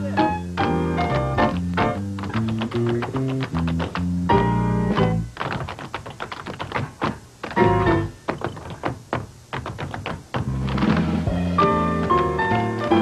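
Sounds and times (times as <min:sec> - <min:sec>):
tap shoes striking floor: 0:01.1 - 0:11.1.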